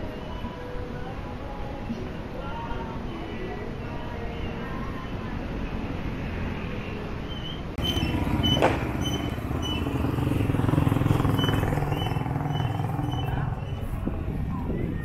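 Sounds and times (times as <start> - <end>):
street traffic: 0.0 - 15.0
motorcycle passing close by: 7.8 - 14.2
motorcycle engines running: 7.8 - 15.0.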